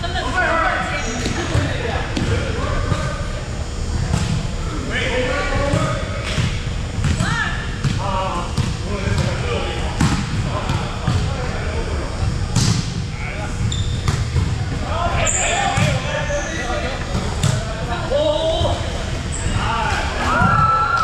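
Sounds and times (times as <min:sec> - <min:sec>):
players calling and talking: 0:00.0 - 0:21.0.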